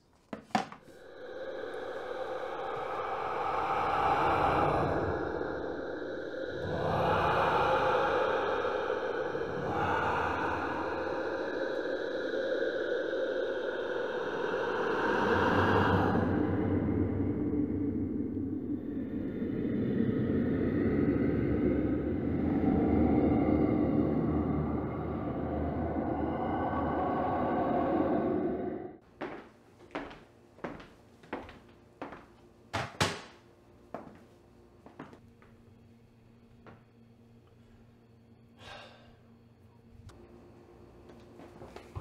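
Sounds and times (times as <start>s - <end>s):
faint room hum: 0.0s - 42.0s
low dark rumbling drone: 1.0s - 29.0s.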